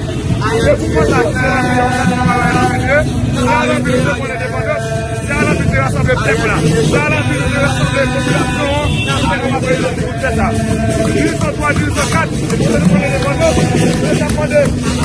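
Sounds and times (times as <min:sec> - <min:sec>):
protesters chanting in unison: 0:00.0 - 0:15.0
street crowd rumble: 0:00.0 - 0:15.0.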